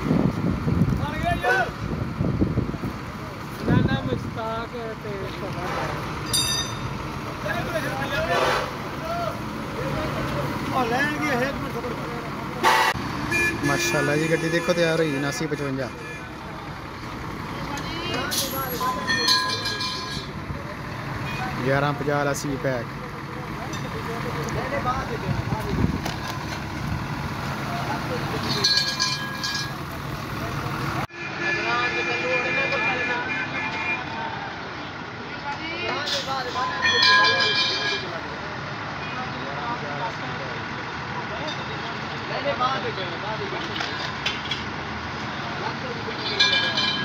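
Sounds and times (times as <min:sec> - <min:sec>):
bus engine and tyres: 0:00.0 - 0:47.0
voices: 0:00.3 - 0:47.0
vehicle horn: 0:12.6 - 0:16.5, 0:31.1 - 0:34.2.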